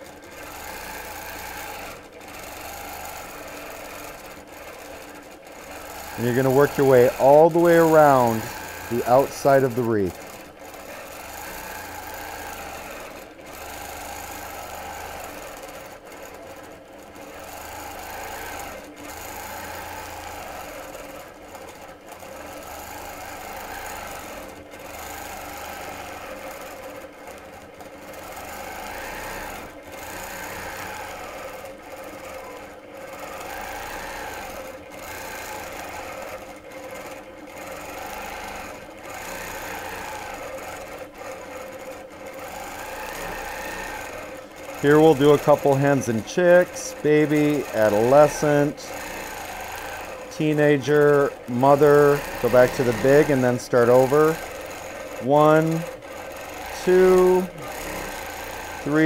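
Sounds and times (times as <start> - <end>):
quilting machine stitching: 0.0 - 59.0.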